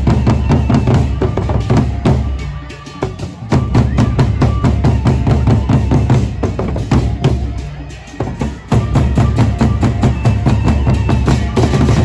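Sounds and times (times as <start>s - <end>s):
barrel drums beaten fast: 3.0s - 7.6s, 8.2s - 12.0s.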